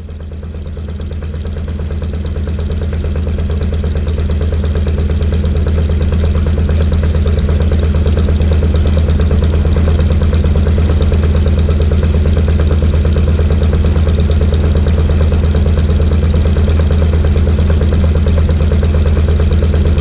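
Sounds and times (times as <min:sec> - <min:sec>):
radial piston engine idling: 0:00.0 - 0:20.0.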